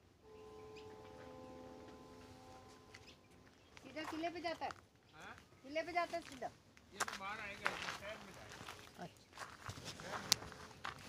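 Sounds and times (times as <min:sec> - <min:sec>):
footsteps through scrub: 0:02.8 - 0:04.8, 0:05.4 - 0:11.0.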